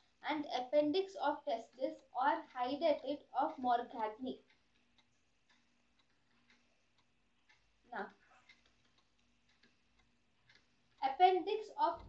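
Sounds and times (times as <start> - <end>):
faint clicks: 4.4 - 12.0.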